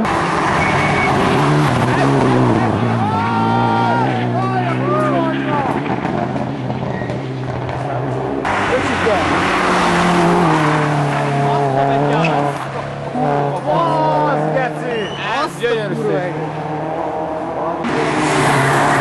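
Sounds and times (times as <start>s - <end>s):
car passing closely: 0.0s - 19.0s
rally car engines revving: 0.0s - 19.0s
tyres squealing: 13.7s - 15.6s.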